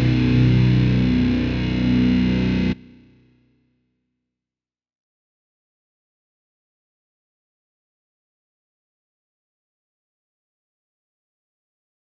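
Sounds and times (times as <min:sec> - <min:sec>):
heavy metal music: 0:00.0 - 0:02.8.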